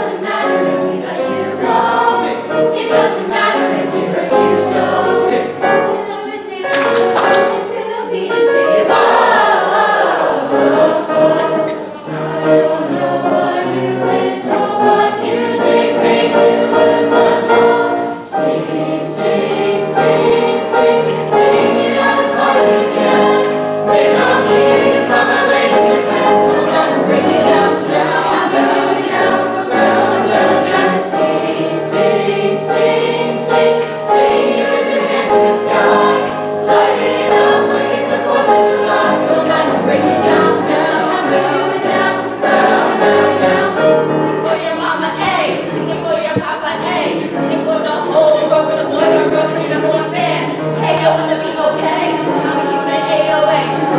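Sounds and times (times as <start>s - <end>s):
children's choir singing: 0.0s - 53.9s
grand piano: 0.0s - 53.9s.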